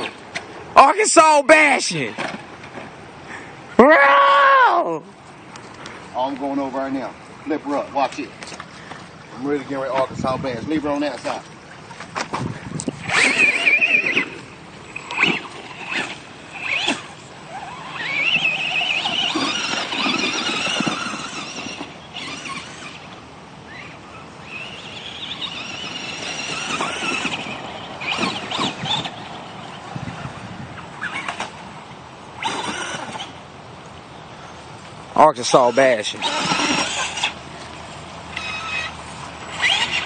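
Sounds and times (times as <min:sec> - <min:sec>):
toy truck motor whining: 0:13.0 - 0:29.4, 0:32.4 - 0:33.4, 0:35.5 - 0:37.4, 0:38.3 - 0:40.0.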